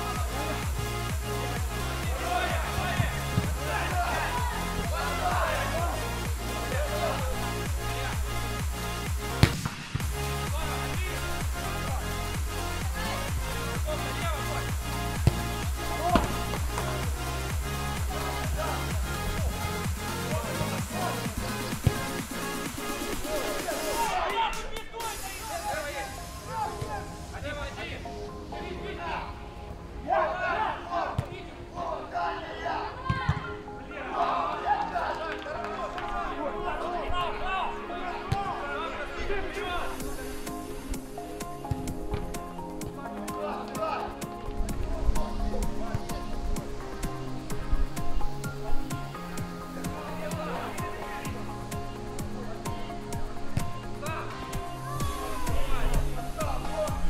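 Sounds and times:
electronic dance music: 0.0 - 28.6, 39.4 - 57.0
players shouting and calling: 0.0 - 57.0
ball being kicked: 9.4 - 10.0, 15.2 - 15.4, 16.1 - 16.9.

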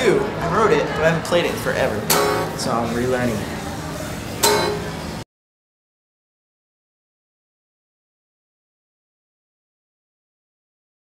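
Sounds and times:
guitar chord strummed: 2.0 - 2.6, 4.4 - 5.2.

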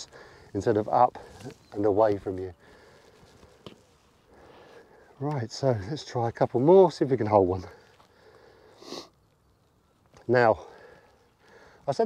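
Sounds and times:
person sniffing: 8.5 - 9.2.

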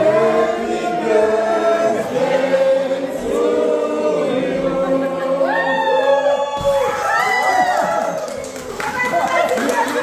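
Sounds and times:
group singing in unison: 0.0 - 6.8.

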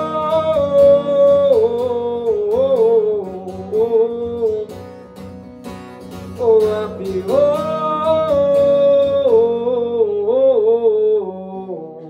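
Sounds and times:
man singing long notes: 0.0 - 5.0, 6.2 - 12.0
strummed acoustic guitar: 0.0 - 12.0.

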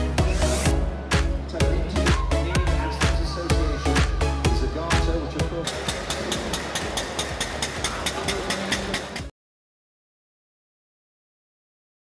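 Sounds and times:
single-cylinder engine chugging: 5.7 - 9.3.

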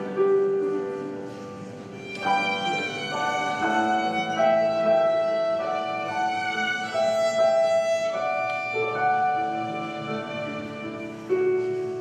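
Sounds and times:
violin clarinet and piano melody: 0.0 - 12.0.

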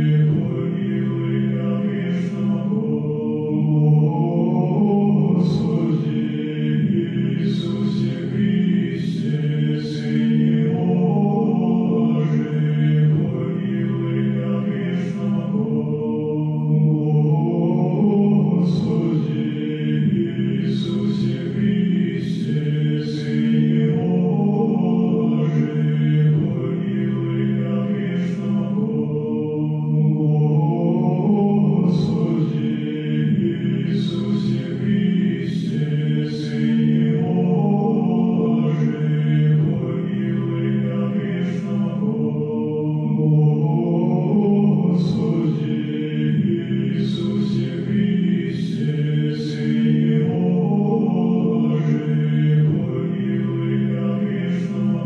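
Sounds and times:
slow vocal chant in low voices: 0.0 - 55.0.

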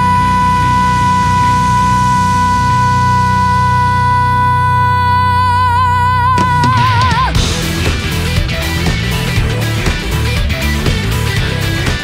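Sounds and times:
woman singing a high note: 0.0 - 7.4
bass and guitar accompaniment: 0.0 - 12.0.

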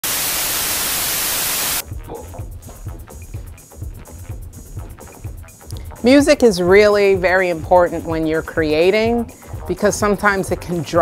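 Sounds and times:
tv static hiss: 0.0 - 1.8
low music beat: 1.8 - 11.0.

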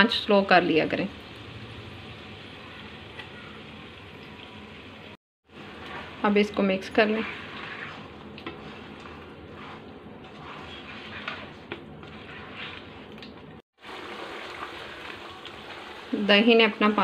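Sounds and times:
food sizzling in a wok: 0.1 - 8.9, 13.8 - 17.0
spatula scraping a wok: 5.5 - 13.6.

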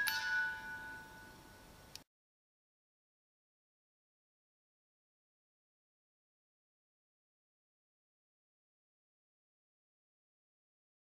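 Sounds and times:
bell-like chime ringing: 0.0 - 1.7.

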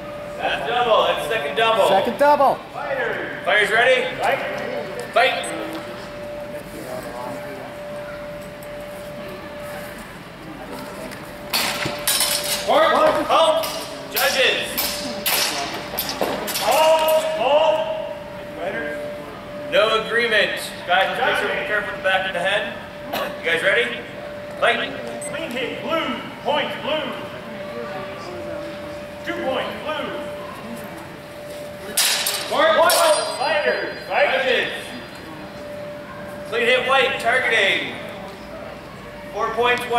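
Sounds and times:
swords striking: 32.0 - 33.4.

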